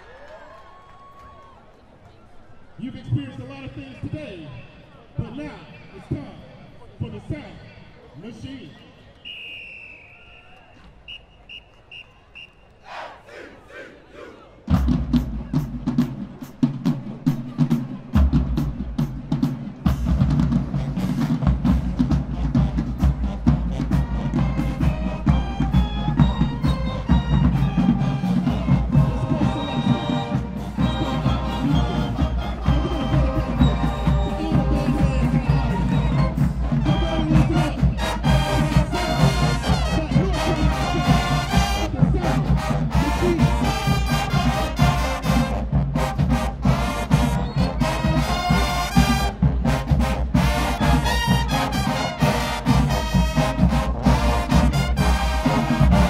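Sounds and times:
marching band horns: 9.2 - 56.0
marching drumline: 12.9 - 56.0.

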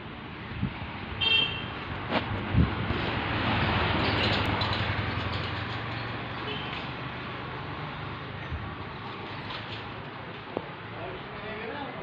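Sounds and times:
street traffic noise: 0.0 - 12.0
high-pitched vehicle horn toot: 1.2 - 1.7.

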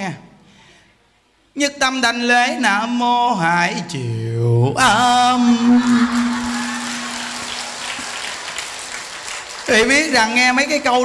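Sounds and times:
man chanting a held note: 4.7 - 7.6
audience applauding: 5.8 - 11.0.

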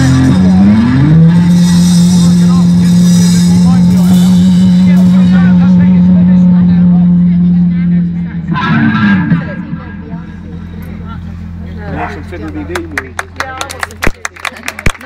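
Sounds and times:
bending pitched sound: 0.0 - 13.6.

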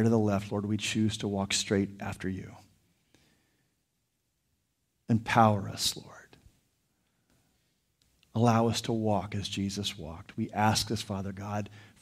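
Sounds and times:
person speaking: 8.1 - 12.0.

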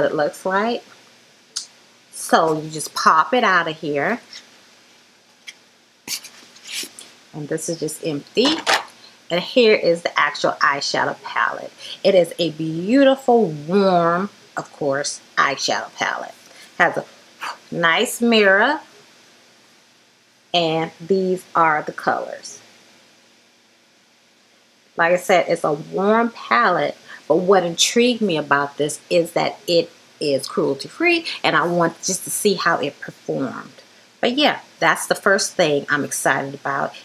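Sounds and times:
faint steady hiss: 0.0 - 37.0.

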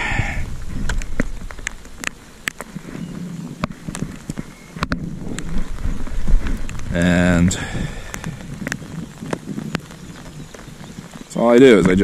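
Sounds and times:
light rain patter: 0.0 - 12.0
raindrops ticking on a surface: 0.0 - 12.0.

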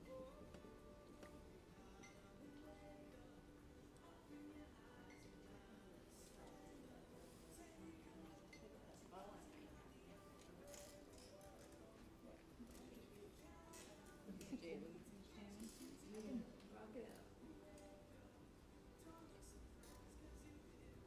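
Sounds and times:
faint background music: 0.0 - 21.0
faint indistinct voices: 0.0 - 21.0.

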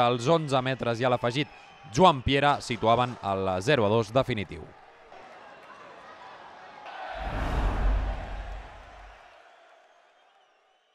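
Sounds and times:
faint crowd noise: 4.5 - 9.2
whoosh with deep rumble: 7.2 - 9.2.

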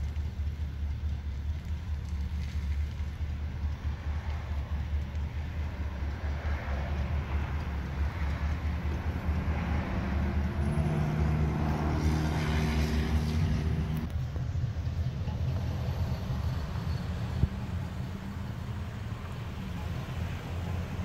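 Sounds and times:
car engine rumbling pulling away: 0.0 - 21.0.

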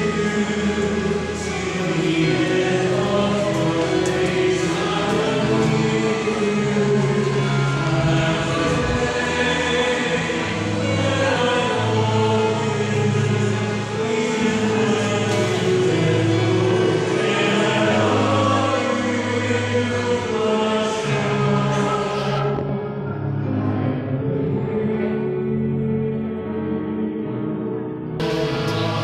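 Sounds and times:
choir singing a hymn: 0.0 - 29.0.

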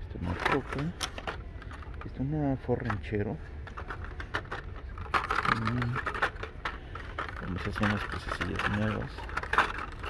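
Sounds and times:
plastic packaging clicking and crinkling: 0.2 - 10.0.

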